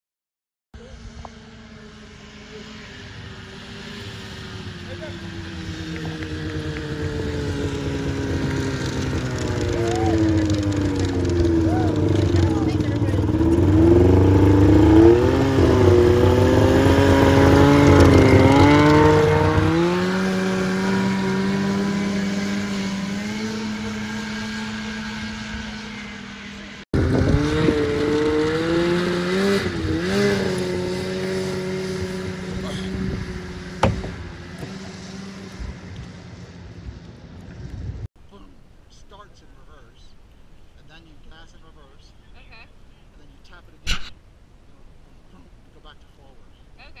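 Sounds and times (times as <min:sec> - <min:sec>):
snowmobile engine revving: 0:00.8 - 0:37.2.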